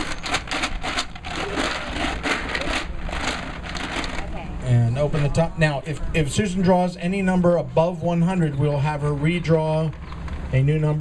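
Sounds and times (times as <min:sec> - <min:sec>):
balls rattling in plastic jar: 0:00.0 - 0:04.4.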